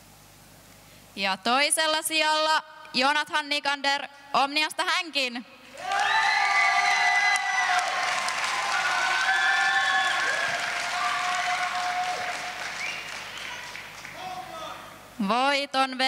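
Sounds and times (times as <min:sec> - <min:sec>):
audience applauding: 0:05.7 - 0:14.7
long cheering calls: 0:05.8 - 0:14.8.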